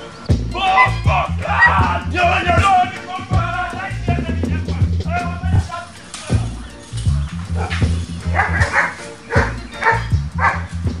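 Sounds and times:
dogs barking: 0:00.0 - 0:03.0, 0:05.6 - 0:11.0
music with heavy bass beat: 0:00.0 - 0:11.0.

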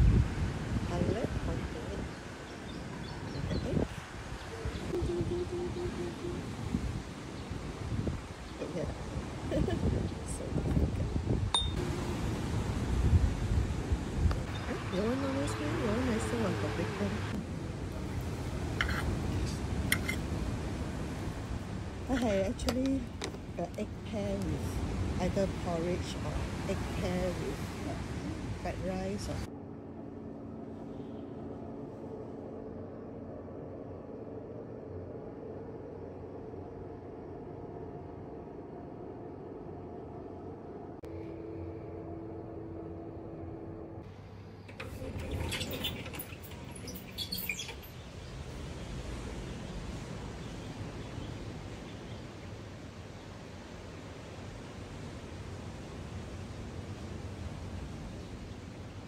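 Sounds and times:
low background rumble: 0:00.0 - 0:59.0
low mechanical hum: 0:00.0 - 0:59.0
tableware clink: 0:11.6 - 0:11.8, 0:19.9 - 0:20.2.

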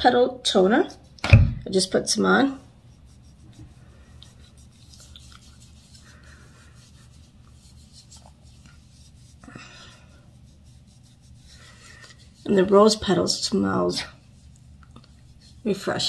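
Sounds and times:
cotton pad rubbing on skin: 0:02.6 - 0:16.0.

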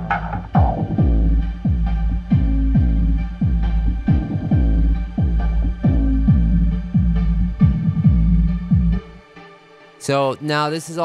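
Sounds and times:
deep kick drums: 0:00.0 - 0:09.1
heavy sub-bass: 0:00.0 - 0:09.2.

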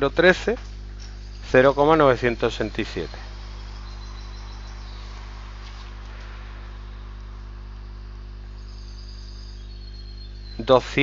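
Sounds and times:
constant hiss: 0:00.0 - 0:11.0
electrical mains hum: 0:00.0 - 0:11.0.

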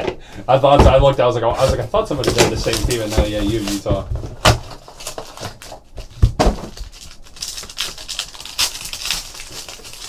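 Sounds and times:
foil wrapper crinkling: 0:01.6 - 0:10.0.

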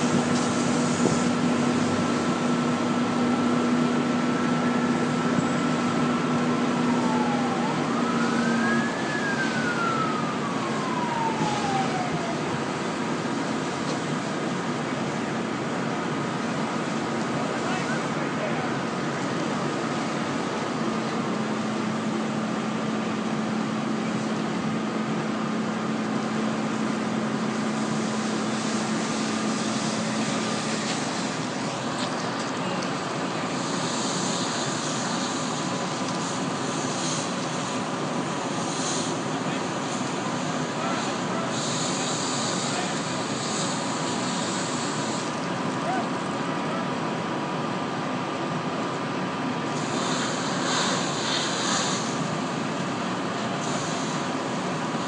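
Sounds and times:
fire hose spraying water: 0:00.0 - 0:55.0
steady mechanical drone: 0:00.0 - 0:55.0.

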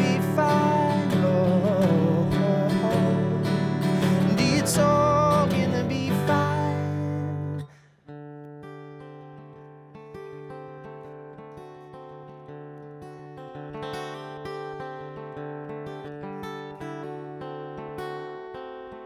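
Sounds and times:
acoustic guitar picking: 0:00.0 - 0:19.0.

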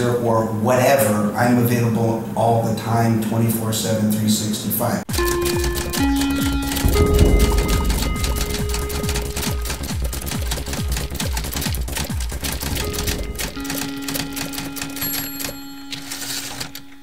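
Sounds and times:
music with a beat: 0:05.1 - 0:15.0.

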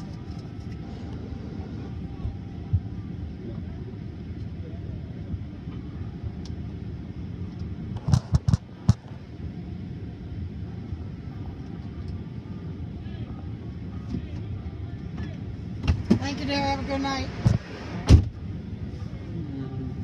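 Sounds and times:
low vehicle rumble in cabin: 0:00.0 - 0:20.0.

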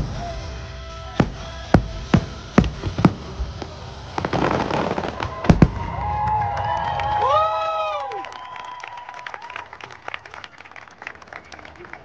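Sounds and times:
loud firework booms: 0:00.0 - 0:06.8
crackling firework bursts: 0:00.0 - 0:08.8.

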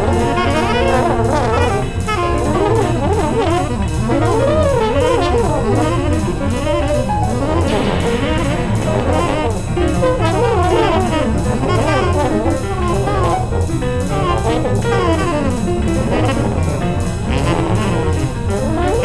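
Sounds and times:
jazz ensemble with saxophone and brass: 0:00.0 - 0:19.0.

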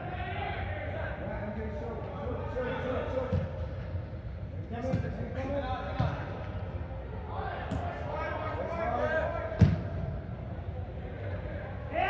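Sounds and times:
ball kicks echoing in hall: 0:03.0 - 0:06.9, 0:07.5 - 0:10.6.

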